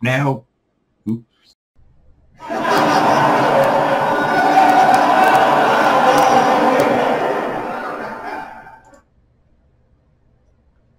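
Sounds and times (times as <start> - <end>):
audience laughing: 2.4 - 8.9.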